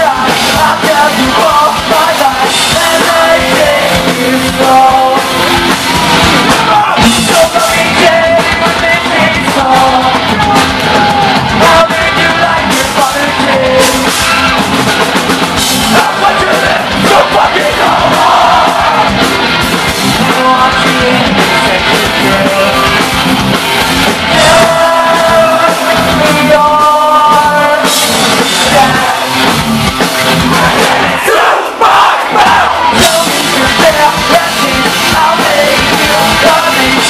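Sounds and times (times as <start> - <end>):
crowd shouting along: 0.0 - 37.0
distorted electric guitars: 0.0 - 37.0
drums: 0.0 - 37.0.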